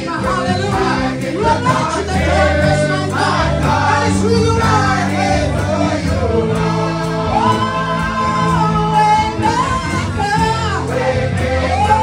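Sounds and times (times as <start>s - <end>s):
congregation singing gospel song: 0.0s - 12.0s
instruments holding bass notes: 0.0s - 12.0s.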